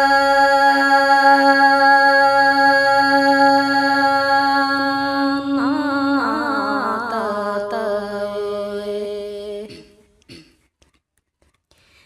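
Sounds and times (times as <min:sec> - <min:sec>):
woman singing folk song: 0:00.0 - 0:09.8.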